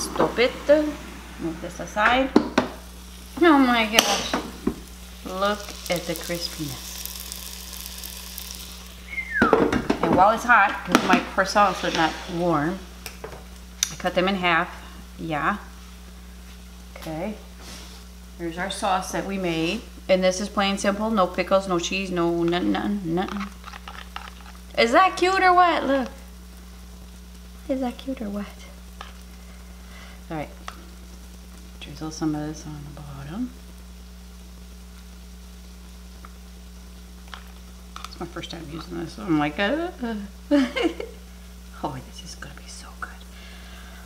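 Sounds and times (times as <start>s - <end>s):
light crackles: 0.0s - 14.2s, 20.8s - 39.0s
chicken sizzling in air fryer: 0.0s - 42.7s, 43.3s - 44.0s
air fryer hum: 0.0s - 44.0s.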